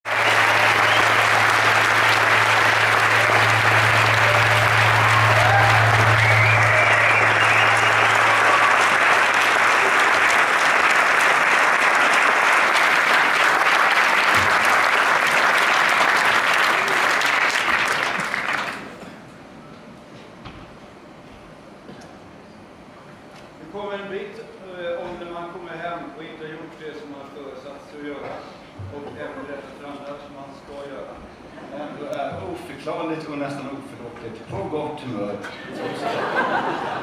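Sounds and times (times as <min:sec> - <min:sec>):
audience applauding: 0:00.0 - 0:19.1, 0:35.8 - 0:37.0
low steady hum: 0:00.1 - 0:11.2.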